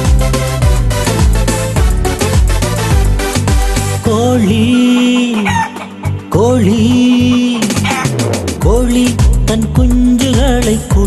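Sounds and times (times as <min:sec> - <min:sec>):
song beat: 0:00.0 - 0:11.0
rooster crowing: 0:05.4 - 0:06.0.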